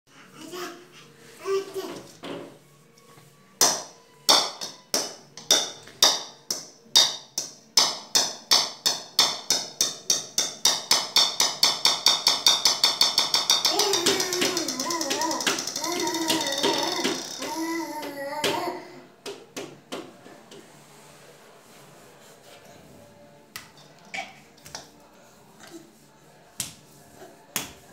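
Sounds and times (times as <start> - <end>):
baby's voice: 13.7 - 19.0.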